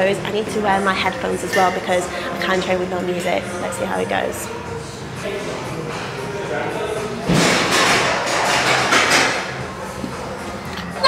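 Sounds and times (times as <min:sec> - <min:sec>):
barbell plates knocking and rattling: 0:07.3 - 0:09.6.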